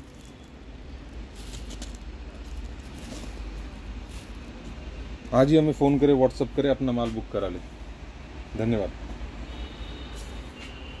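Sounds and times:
soft rustles: 0.0s - 4.8s.

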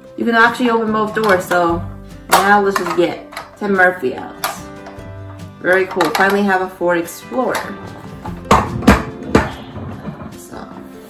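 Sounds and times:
faint background music: 0.0s - 11.0s
toy handled on hard surface knocks: 5.9s - 6.4s, 7.6s - 10.6s.

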